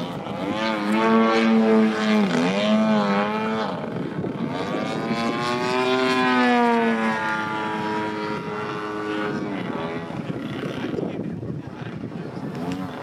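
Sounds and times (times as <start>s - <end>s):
model plane flying overhead: 0.0s - 13.0s.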